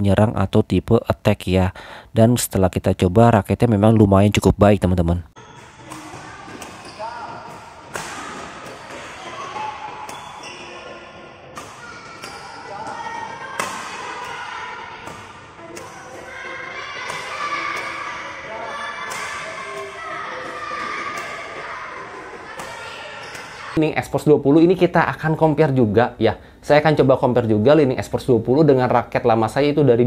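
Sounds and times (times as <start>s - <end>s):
racket hitting shuttlecock: 5.4s - 10.8s, 11.5s - 23.8s.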